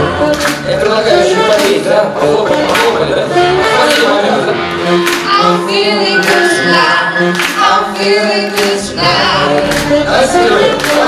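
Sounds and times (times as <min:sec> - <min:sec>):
live band: 0:00.0 - 0:11.0
man and woman singing: 0:00.0 - 0:11.0.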